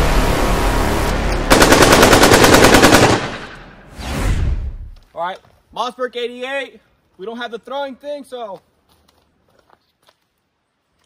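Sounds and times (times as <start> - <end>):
loud rushing rumble: 0.0 - 4.9
machine-gun fire: 1.5 - 3.7.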